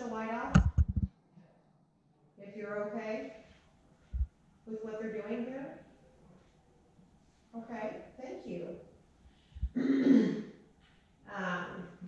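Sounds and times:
woman clearing her throat: 9.7 - 10.6.

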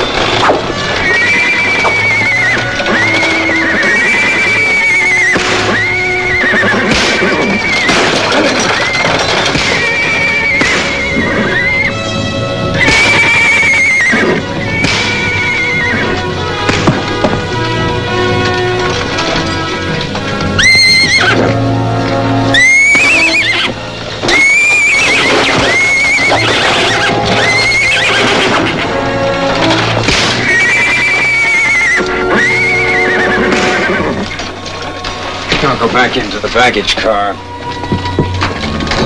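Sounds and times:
horses whinnying: 0.0 - 39.0
orchestral film score: 0.0 - 39.0.

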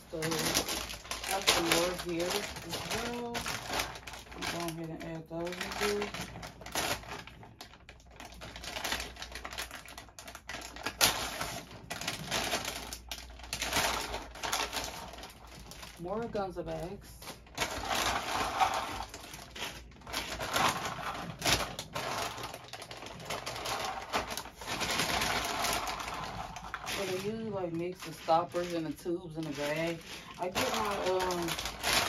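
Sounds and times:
plastic bags crinkling: 0.0 - 32.0.

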